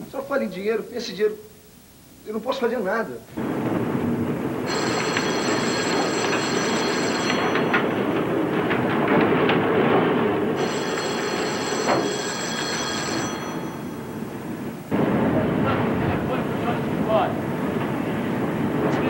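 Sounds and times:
loud steady rumbling: 3.2s - 11.9s, 13.2s - 19.0s
telephone bell ringing: 4.6s - 14.9s.

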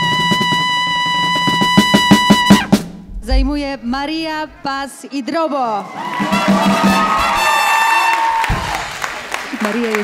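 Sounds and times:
trumpet holding high note: 0.0s - 2.8s, 6.2s - 8.3s
drum roll and hits: 1.6s - 4.2s, 8.4s - 8.9s.

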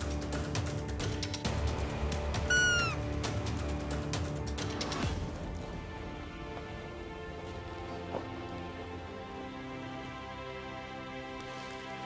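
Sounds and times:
deer call squeak: 2.4s - 3.0s.

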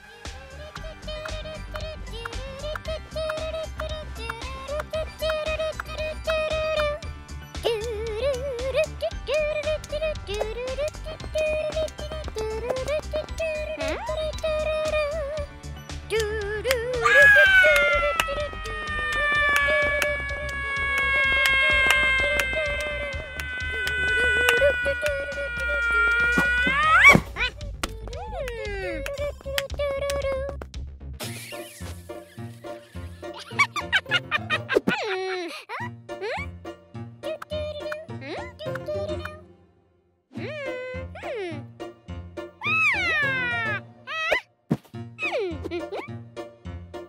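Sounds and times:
children's music with low beat: 0.0s - 34.8s, 35.9s - 39.6s
high-pitched cartoon vocal sounds: 7.6s - 15.4s, 16.1s - 30.5s, 40.4s - 41.7s, 42.6s - 44.5s
cartoon child whiny wail: 17.0s - 27.6s, 42.6s - 44.5s.

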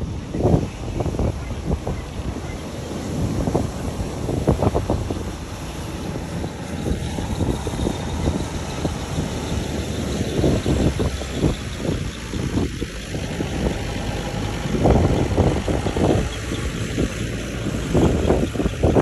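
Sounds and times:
tractor diesel engine running: 0.0s - 19.0s
wind buffeting microphone: 0.0s - 19.0s.

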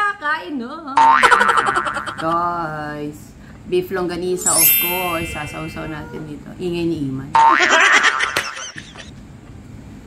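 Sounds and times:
toddler squealing: 5.7s - 6.4s.

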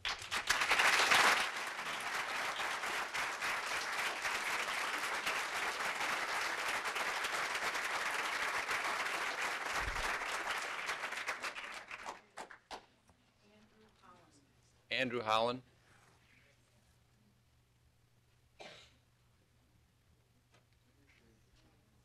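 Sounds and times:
audience applause: 0.0s - 12.8s.

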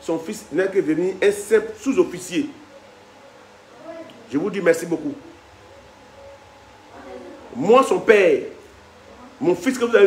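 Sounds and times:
man speaking: 0.0s - 2.6s, 4.3s - 5.4s, 7.5s - 8.6s, 9.4s - 10.0s
faint low hums: 0.0s - 10.0s.

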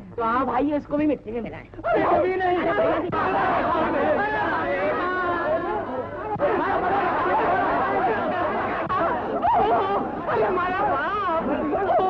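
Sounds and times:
crowd talking and shouting: 1.8s - 12.0s.

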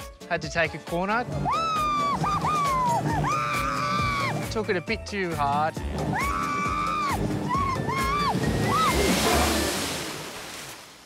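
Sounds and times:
woman shrieking with laughter: 1.4s - 4.4s, 6.2s - 9.0s
rush of water spray: 8.3s - 11.0s.

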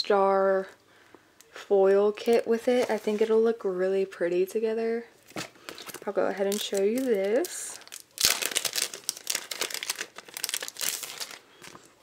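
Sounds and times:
plastic packaging crinkling: 2.2s - 3.4s, 5.2s - 12.0s.

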